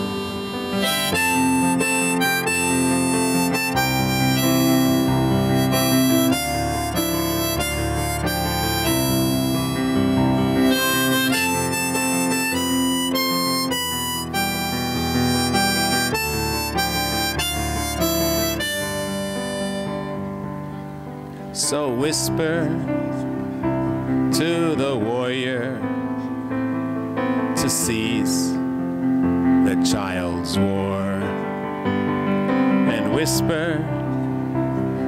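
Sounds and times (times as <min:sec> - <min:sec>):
harmonica melody: 0:00.0 - 0:35.0.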